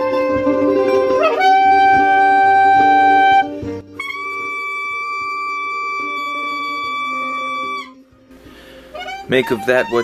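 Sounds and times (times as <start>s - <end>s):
clarinet long high note: 0.0s - 8.0s, 8.9s - 10.0s.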